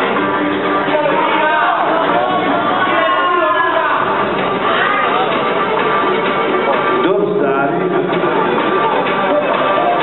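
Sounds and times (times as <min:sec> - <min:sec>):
loud music: 0:00.0 - 0:10.0.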